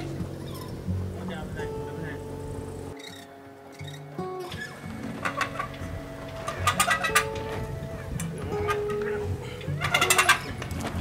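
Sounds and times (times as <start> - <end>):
music with long held notes: 0.0 - 11.0
hand-cranked winch clicking: 2.9 - 11.0.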